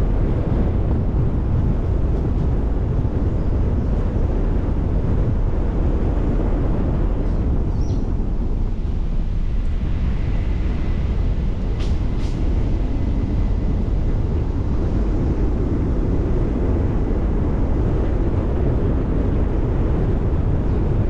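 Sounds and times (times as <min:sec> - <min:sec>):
road and wind noise: 0:00.0 - 0:21.0
wind buffeting microphone: 0:00.0 - 0:21.0.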